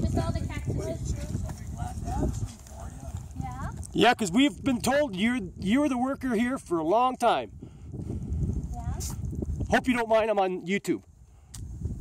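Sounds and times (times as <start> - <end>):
footsteps on pavement: 0.0 - 5.1.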